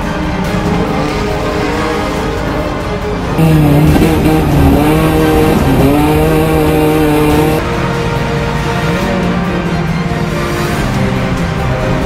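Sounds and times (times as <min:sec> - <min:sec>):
background music: 0:00.0 - 0:12.0
race car engine at high revs: 0:00.4 - 0:07.7.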